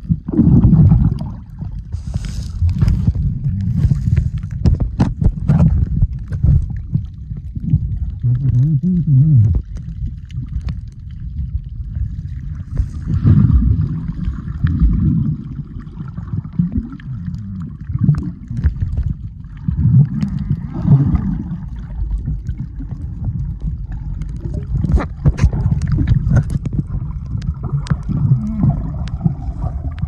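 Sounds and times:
muffled underwater water rushing: 0:00.0 - 0:30.0.

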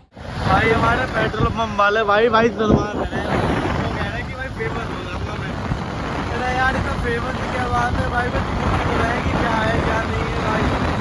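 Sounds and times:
road noise: 0:00.0 - 0:11.0
wind buffeting microphone: 0:00.0 - 0:11.0.

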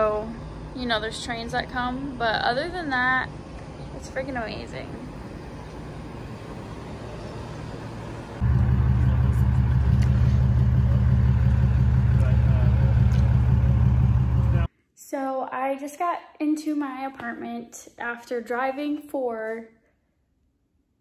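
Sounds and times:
outdoor background noise: 0:00.0 - 0:14.7.

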